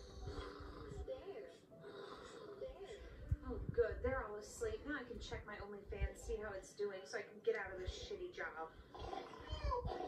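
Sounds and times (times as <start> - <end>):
puppet voices from tv speaker: 8.9 - 10.0.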